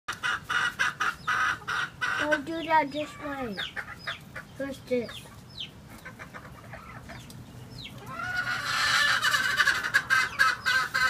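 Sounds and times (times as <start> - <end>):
chicken clucking: 0.1 - 11.0.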